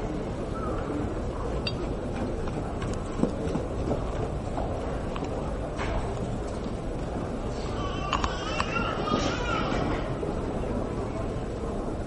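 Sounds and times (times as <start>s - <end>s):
arena background noise: 0.0s - 12.0s.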